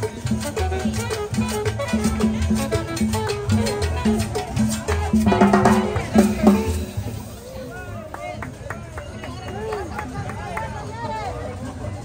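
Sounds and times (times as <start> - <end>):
plucked upright bass: 0.0 - 7.4
live salsa band playing: 0.0 - 7.9
steady percussion: 0.0 - 7.9.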